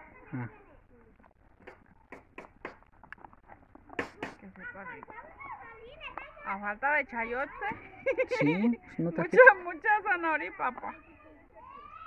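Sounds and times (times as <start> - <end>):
quiet talking: 0.0 - 2.8, 3.5 - 12.0.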